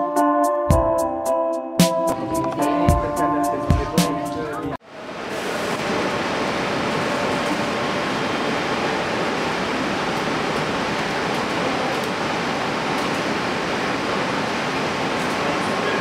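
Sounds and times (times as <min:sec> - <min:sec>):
ventilation and machinery rushing: 0:04.8 - 0:16.0.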